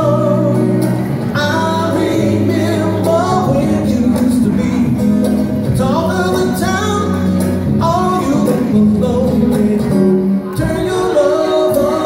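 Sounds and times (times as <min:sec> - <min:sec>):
acoustic guitar: 0:00.0 - 0:12.0
man singing wordless melody: 0:00.0 - 0:12.0.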